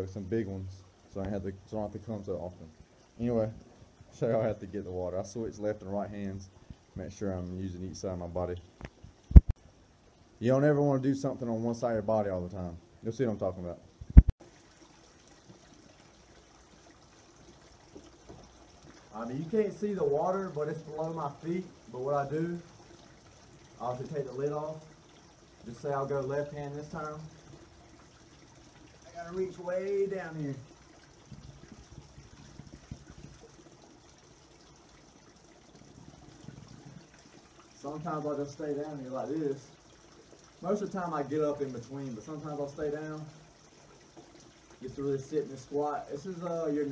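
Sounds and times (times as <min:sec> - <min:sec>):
spring water trickling: 0:00.0 - 0:46.9.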